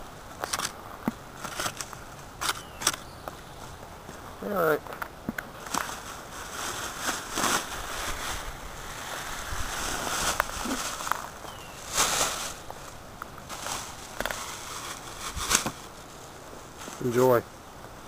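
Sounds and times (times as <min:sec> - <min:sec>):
rustling in dry grass: 0:00.0 - 0:18.0
scrapes: 0:04.9 - 0:16.2.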